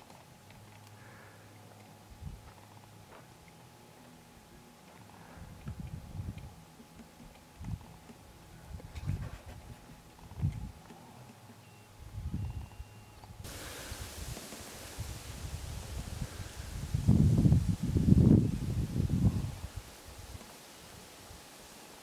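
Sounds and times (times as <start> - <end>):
wind gusting on microphone: 2.1 - 2.5, 5.4 - 6.6, 7.6 - 10.8, 12.0 - 21.4
rustling leaves and grass: 13.3 - 22.0.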